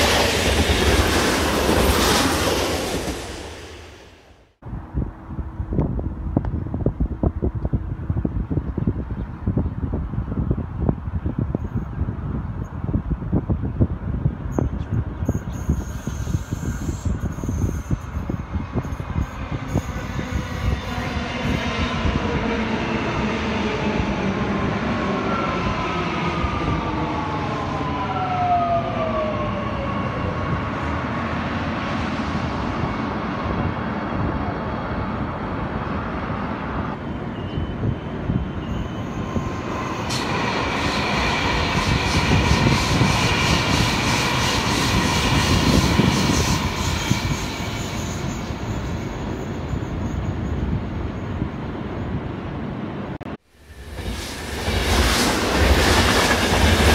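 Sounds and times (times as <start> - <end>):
wheels rumbling on rail: 0.0 - 56.9.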